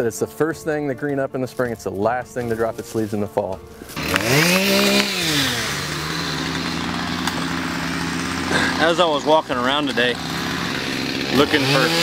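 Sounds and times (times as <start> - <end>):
chainsaw cutting brush: 2.5 - 12.0.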